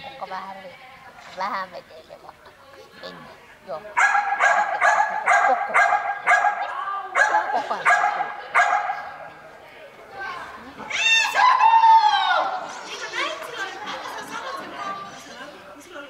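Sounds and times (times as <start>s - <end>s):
dog barking: 4.0s - 9.1s.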